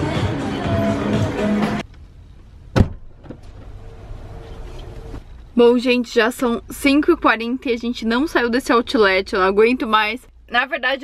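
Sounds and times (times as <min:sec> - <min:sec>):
shop background music: 0:00.0 - 0:01.8
car door shutting: 0:02.7 - 0:05.2.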